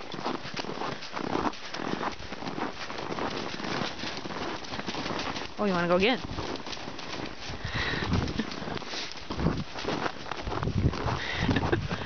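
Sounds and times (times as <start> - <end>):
hoofbeats on snow: 0.0 - 12.0.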